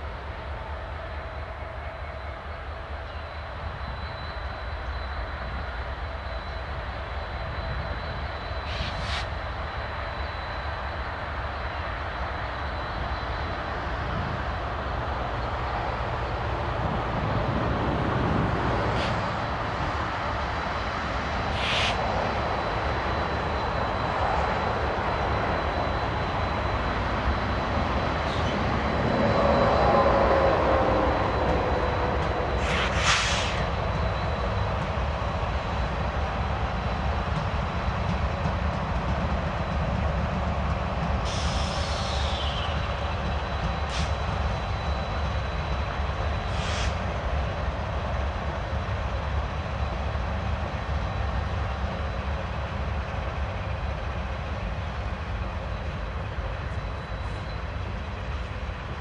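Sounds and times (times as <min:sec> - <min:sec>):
diesel locomotive engines: 0:00.0 - 0:59.0
wheels rumbling on rails: 0:11.4 - 0:59.0.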